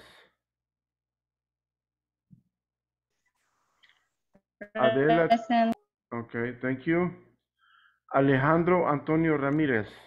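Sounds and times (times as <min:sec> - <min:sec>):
person speaking: 0:04.6 - 0:05.8.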